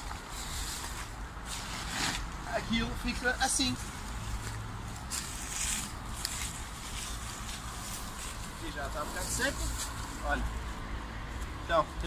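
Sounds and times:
soft rustling and scuffing: 0:00.0 - 0:10.7.

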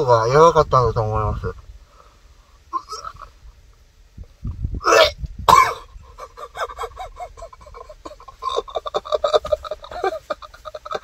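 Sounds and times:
man retching: 0:02.7 - 0:03.4, 0:04.8 - 0:06.3, 0:08.2 - 0:11.0.

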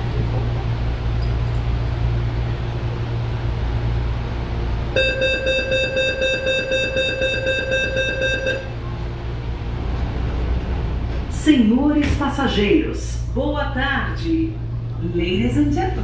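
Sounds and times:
low hum of stopped train: 0:00.0 - 0:16.0
door closing warning tone: 0:05.0 - 0:08.8.

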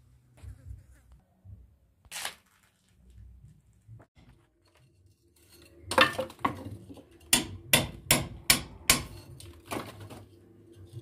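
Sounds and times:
hammer striking steel chisel: 0:07.2 - 0:09.3.

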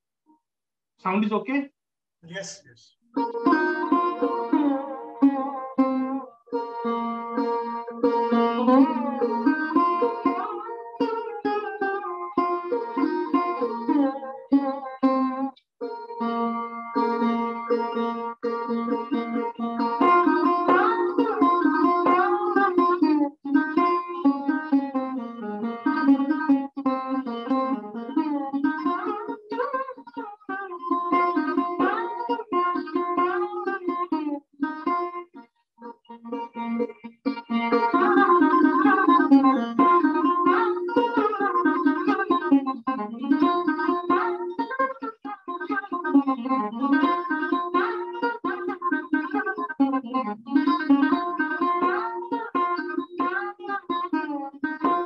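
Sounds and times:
solo sarod playing: 0:03.2 - 0:55.0.

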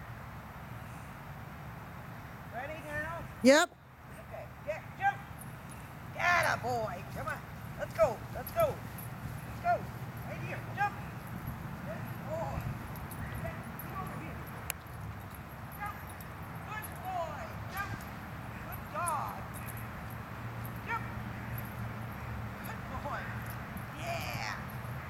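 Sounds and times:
dog barking and yipping: 0:15.7 - 0:16.3.

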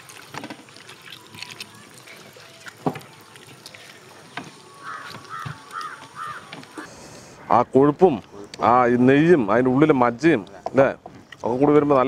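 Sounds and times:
crow cawing: 0:04.7 - 0:06.9.

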